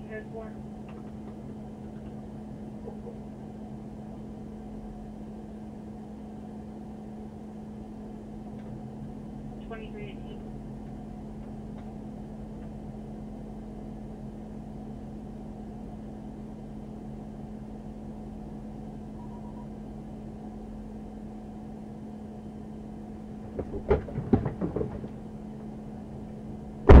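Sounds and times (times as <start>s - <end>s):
car engine idling hum: 0.0s - 27.0s.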